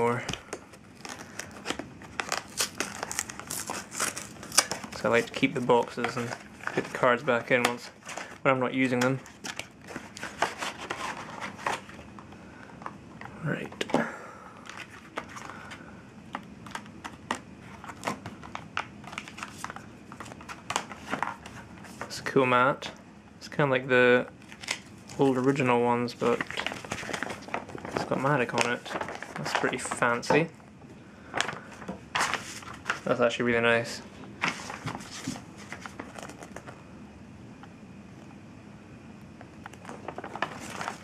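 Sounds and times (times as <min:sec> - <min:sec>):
plastic packaging crinkling: 0:00.1 - 0:12.1, 0:24.4 - 0:30.5, 0:34.4 - 0:36.8, 0:39.6 - 0:41.0.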